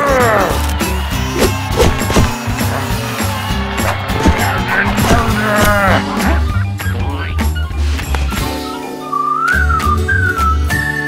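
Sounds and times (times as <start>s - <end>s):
cartoon music with bass beat: 3.8s - 8.9s
whistled tune: 6.5s - 11.0s.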